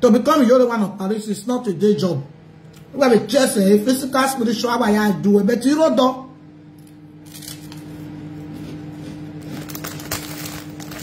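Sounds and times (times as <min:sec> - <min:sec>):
steady low hum: 0:00.0 - 0:11.0
person chewing food: 0:07.4 - 0:10.2.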